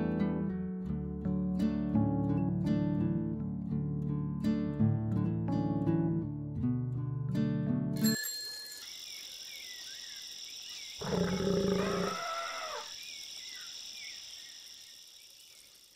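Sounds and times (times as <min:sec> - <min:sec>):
plucked acoustic guitar music: 0:00.0 - 0:08.0
high insect chirring: 0:08.8 - 0:15.9
animal roar: 0:11.0 - 0:12.9.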